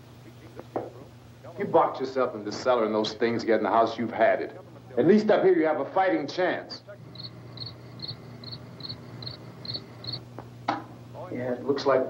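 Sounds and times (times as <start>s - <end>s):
low steady hum: 0.0s - 12.0s
cricket chirping: 7.0s - 10.2s.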